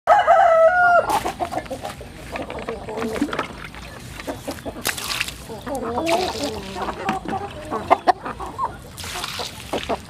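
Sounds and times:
rooster crowing: 0:00.1 - 0:01.1
chickens calling softly: 0:00.1 - 0:10.0.

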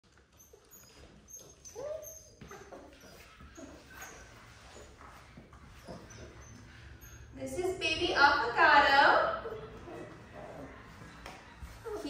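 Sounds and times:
puppy squeaks: 0:00.1 - 0:07.8, 0:09.4 - 0:12.0
puppy whimpering: 0:00.1 - 0:07.8, 0:09.3 - 0:12.0.

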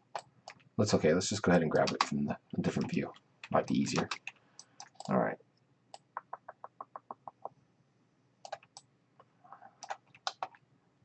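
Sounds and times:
computer mouse ticking: 0:02.8 - 0:05.2, 0:08.4 - 0:08.9, 0:09.8 - 0:10.6
computer mouse clicks: 0:03.4 - 0:05.2, 0:08.4 - 0:08.9, 0:09.8 - 0:10.6.

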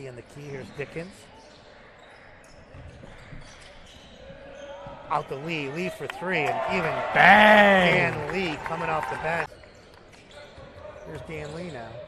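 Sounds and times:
shoe squeak: 0:00.3 - 0:05.2, 0:09.6 - 0:12.0.

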